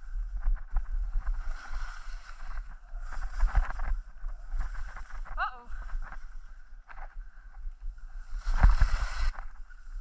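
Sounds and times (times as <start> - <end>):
skis scraping through snow: 0.0 - 5.2, 8.0 - 10.0
wind rumbling on microphone: 0.0 - 10.0.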